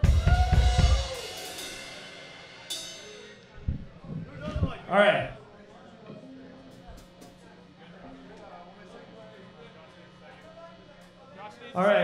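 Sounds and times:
cymbal crash ringing: 0:00.0 - 0:03.6
low drum thumps: 0:03.6 - 0:04.9.

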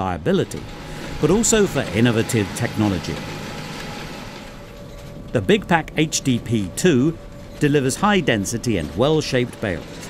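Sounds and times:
tractor and baler running: 0:00.0 - 0:10.0.

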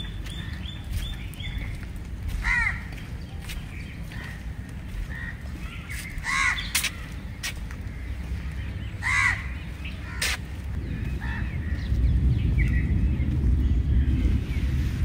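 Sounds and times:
steady low rumble: 0:00.0 - 0:15.0
crow cawing: 0:02.4 - 0:03.0, 0:04.1 - 0:07.2, 0:09.0 - 0:10.4.

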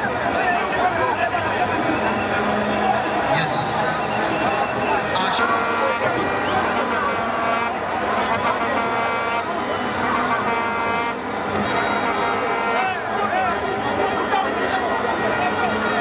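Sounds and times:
crowd voices: 0:00.0 - 0:16.0
long horn blasts: 0:02.2 - 0:16.0.

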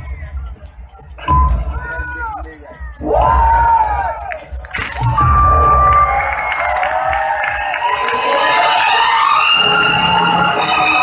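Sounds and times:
audience cheering and shouting: 0:01.3 - 0:11.0.

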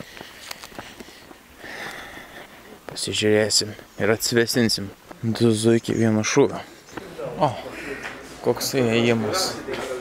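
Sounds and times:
footsteps on asphalt: 0:00.0 - 0:03.0, 0:04.9 - 0:05.5.

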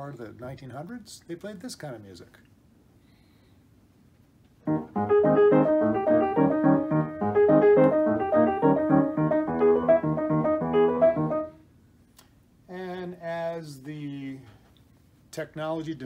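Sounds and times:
player piano old-time tune: 0:04.6 - 0:11.6.

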